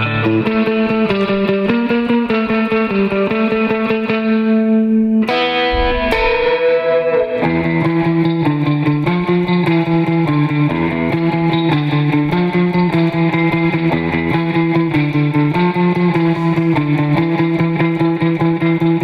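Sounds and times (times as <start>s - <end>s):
electric guitar tremolo picking: 0.0s - 19.0s
guitar chord ringing: 0.0s - 19.0s.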